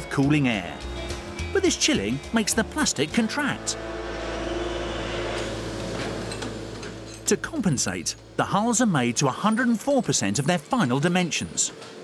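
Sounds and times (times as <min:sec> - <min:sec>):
fans blowing air: 0:00.0 - 0:12.0
low hum: 0:00.6 - 0:10.5.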